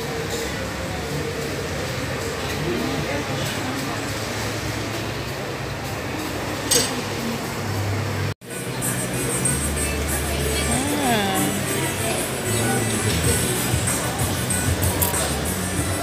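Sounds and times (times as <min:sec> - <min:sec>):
crowd chatter and bustle: 0:00.0 - 0:16.0.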